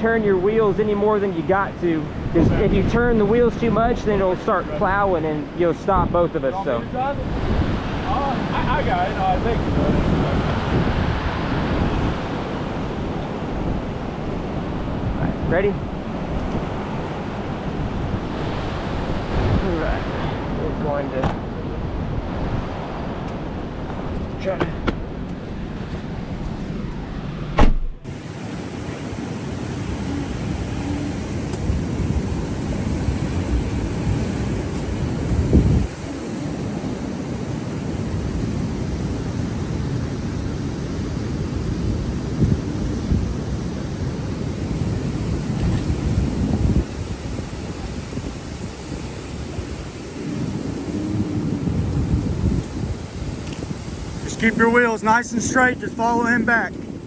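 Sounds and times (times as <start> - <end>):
vehicles running on sand: 0.0 - 57.0
wind rumble on microphone: 0.0 - 57.0
sharp knock: 27.6 - 28.0.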